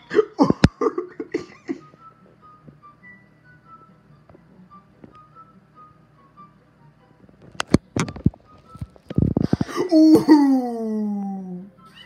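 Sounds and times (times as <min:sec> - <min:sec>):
person laughing: 0:00.0 - 0:01.9, 0:09.6 - 0:11.2.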